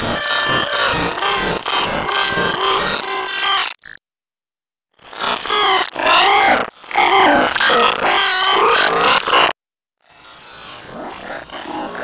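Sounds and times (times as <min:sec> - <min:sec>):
distorted pitch-warped voice: 0:00.0 - 0:03.2.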